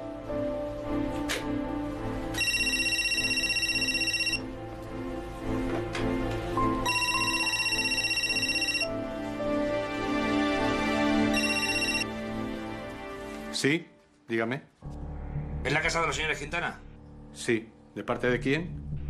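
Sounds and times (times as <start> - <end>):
film music: 0.0 - 19.0
telephone electronic ringer trilling: 2.4 - 4.4, 6.9 - 8.8, 11.4 - 12.0.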